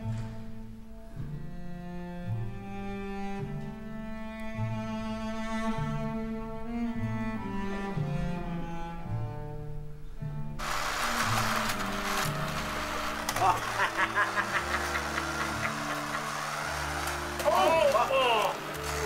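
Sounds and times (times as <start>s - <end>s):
double basses bowed: 0.0s - 13.4s, 14.3s - 19.0s
short laugh: 13.4s - 16.3s.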